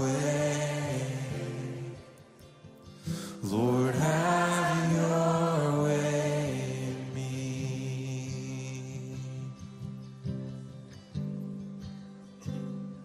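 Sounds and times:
person singing long notes: 3.3s - 9.4s.

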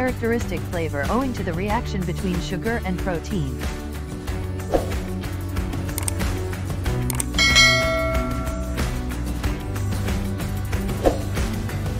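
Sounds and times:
background music: 0.0s - 11.9s
bright bell chime: 7.4s - 9.1s.

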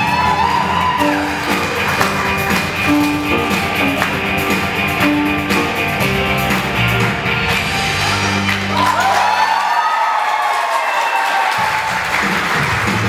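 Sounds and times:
low bass notes: 0.0s - 9.0s
amplified acoustic guitar music: 1.0s - 8.4s
high gliding notes: 1.0s - 8.8s.

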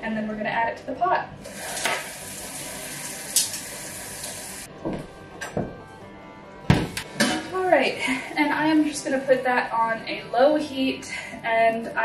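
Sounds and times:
tap running into a sink: 1.7s - 2.2s.

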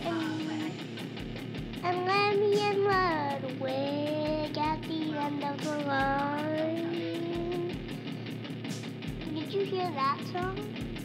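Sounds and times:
quick ticking beat: 0.0s - 11.0s
high-pitched voice singing: 1.8s - 7.8s.

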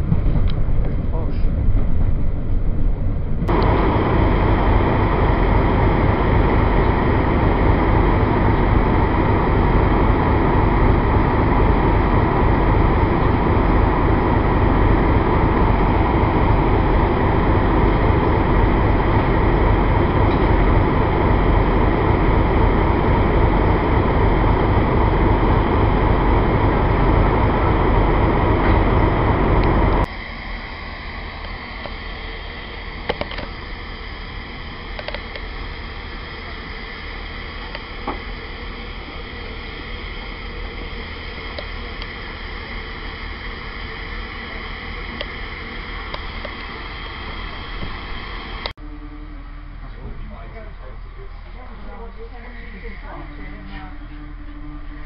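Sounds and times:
diesel locomotive engine idling: 0.0s - 55.0s.

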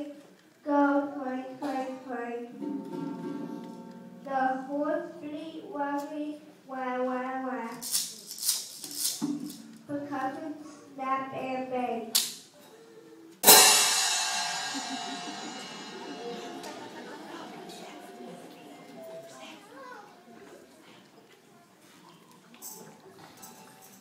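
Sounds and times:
cymbal crash ringing: 13.4s - 19.8s.

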